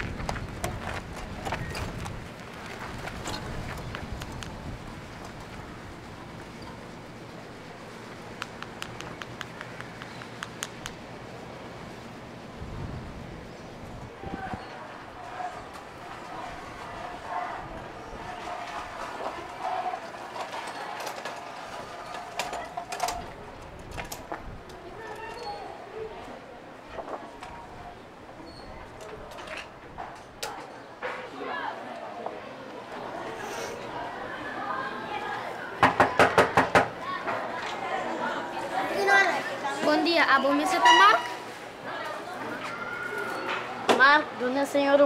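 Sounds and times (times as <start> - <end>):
wheelchair rattling on tiled paving: 0.0 - 6.9, 15.7 - 25.6
sharp clicks: 8.4 - 11.0.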